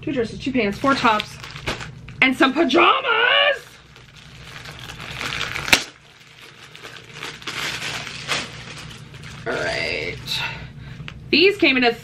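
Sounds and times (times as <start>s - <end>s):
clothing and packaging rustling: 0.6s - 2.2s, 3.6s - 10.3s.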